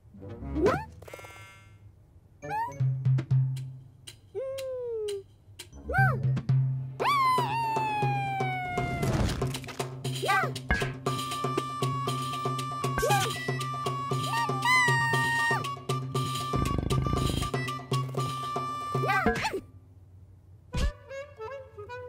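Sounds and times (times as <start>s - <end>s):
cartoon music with drums: 2.4s - 19.6s.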